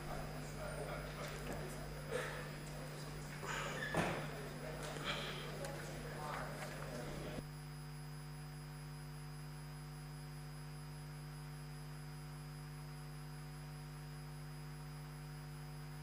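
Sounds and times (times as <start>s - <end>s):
electrical mains hum: 0.0s - 16.0s.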